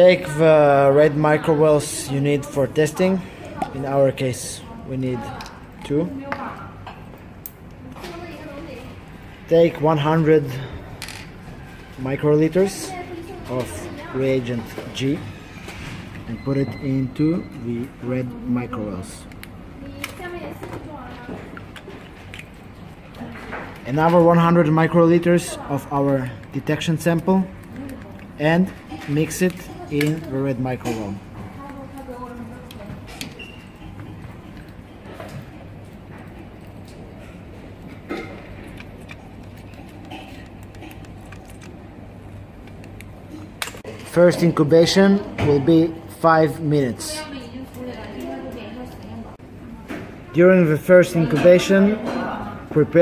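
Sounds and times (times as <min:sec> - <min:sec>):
low steady hum: 0:00.0 - 0:53.0.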